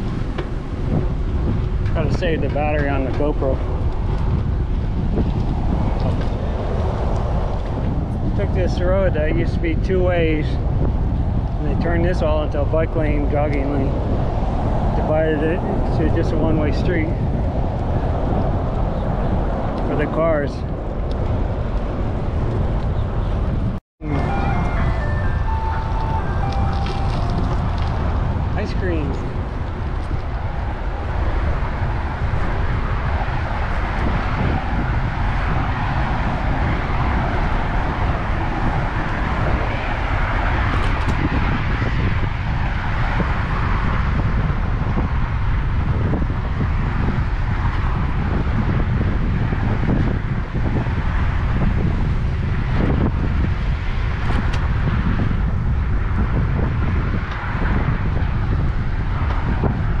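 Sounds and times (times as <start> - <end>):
passing road traffic: 0.0 - 60.0
wind buffeting microphone: 0.0 - 60.0.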